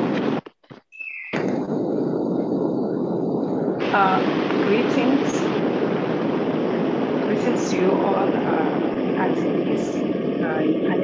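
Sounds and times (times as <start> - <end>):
rushing background noise: 0.0 - 11.0.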